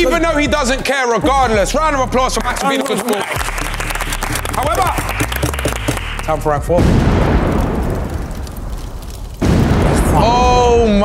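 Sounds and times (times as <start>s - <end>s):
explosion boom with rumble: 6.6s - 11.0s.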